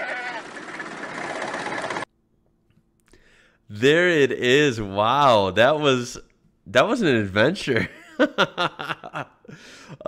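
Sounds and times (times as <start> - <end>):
goat bleating: 0.0 - 0.4.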